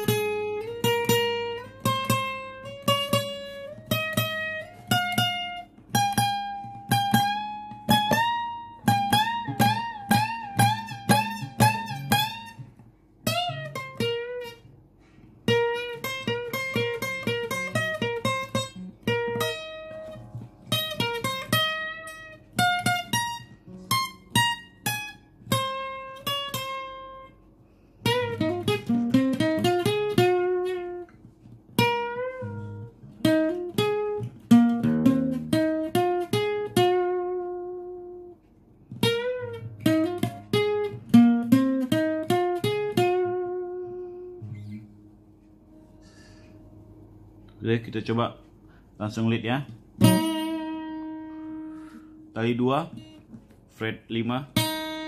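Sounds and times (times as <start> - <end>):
acoustic guitar lead phrases: 0.0 - 55.0.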